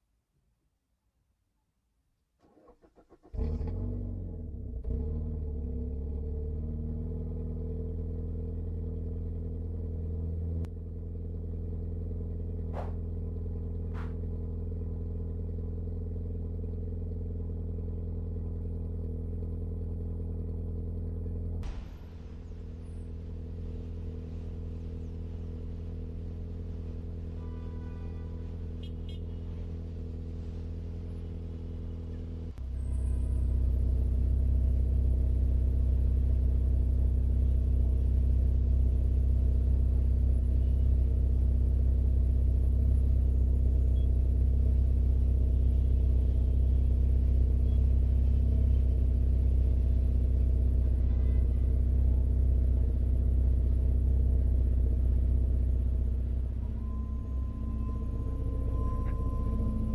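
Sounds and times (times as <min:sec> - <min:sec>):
car engines idling: 0:02.4 - 0:59.9
brief higher tones: 0:56.4 - 0:59.9.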